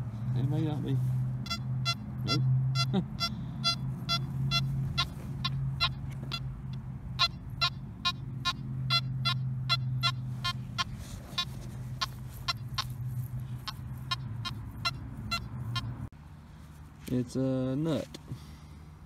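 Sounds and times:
metal detector short sharp beeps: 1.4s - 6.0s.

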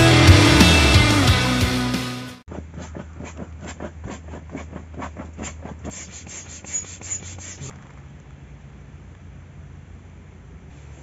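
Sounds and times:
quick regular rubbing: 2.5s - 7.9s
electric air pump humming: 5.8s - 7.7s.

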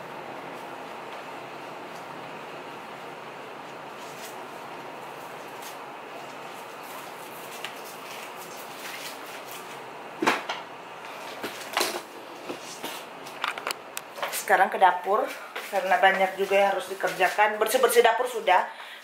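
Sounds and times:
room hiss: 0.0s - 19.0s.

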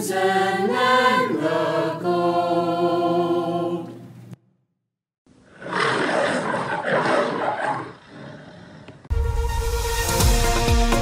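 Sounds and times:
lion roaring: 5.4s - 9.1s.

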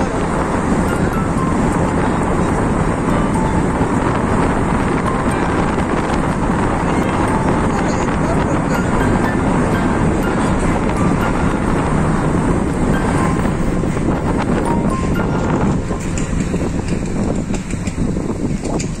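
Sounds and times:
car road and wind noise: 0.0s - 19.0s.

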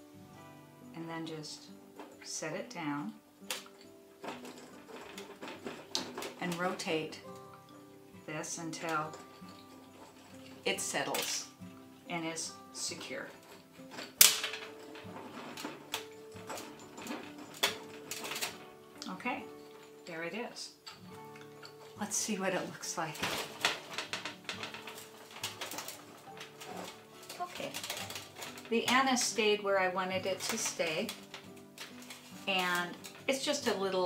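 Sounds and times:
soft background music: 0.0s - 34.0s
glass clinking against rocks: 8.7s - 10.7s, 13.3s - 20.1s.

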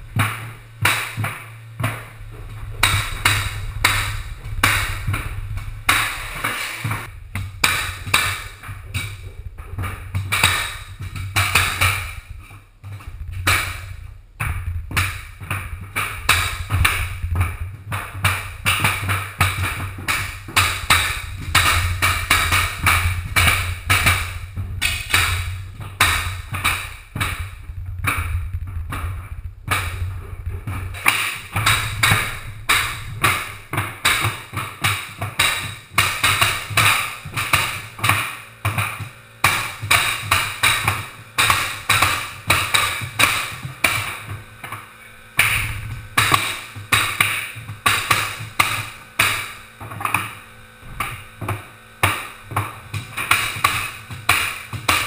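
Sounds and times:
mallet striking flooring nailer: 0.0s - 29.0s, 30.6s - 55.0s
low steady hum: 0.0s - 55.0s.

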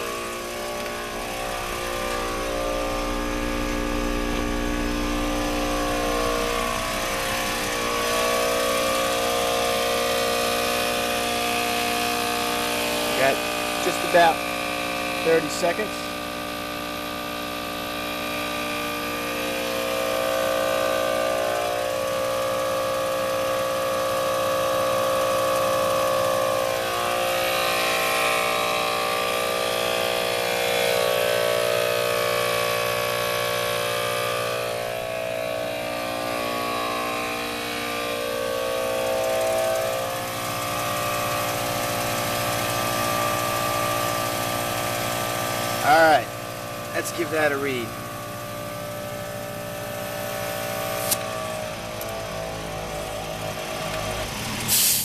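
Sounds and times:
air compressor running: 0.0s - 55.0s.

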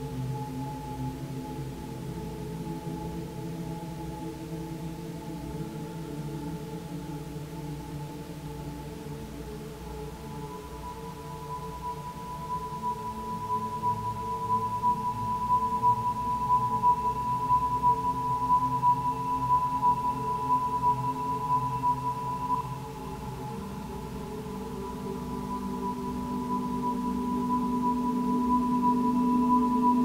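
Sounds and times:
crystal singing bowl ringing: 10.6s - 30.0s.

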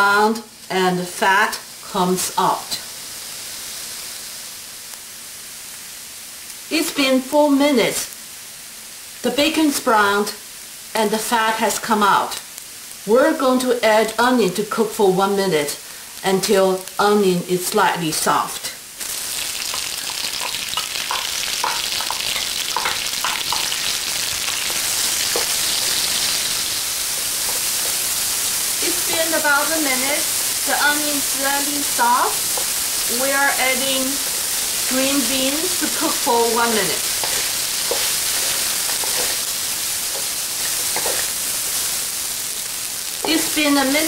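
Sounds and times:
onion sizzling in fat: 0.0s - 44.0s
wooden spatula stirring: 27.0s - 28.1s, 37.0s - 41.4s.

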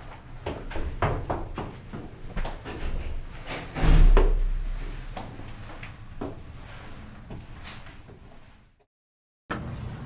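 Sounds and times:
footsteps on concrete stairs: 0.0s - 3.5s, 4.1s - 6.5s
loud deep slam with rumble: 3.7s - 5.2s.

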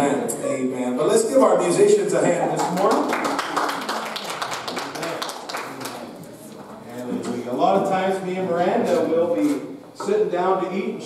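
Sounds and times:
congregation applauding: 2.5s - 6.2s.

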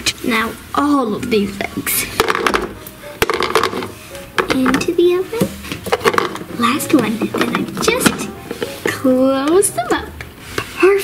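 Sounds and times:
chocolate eggs clattering on plastic: 2.1s - 4.9s, 5.7s - 9.0s.

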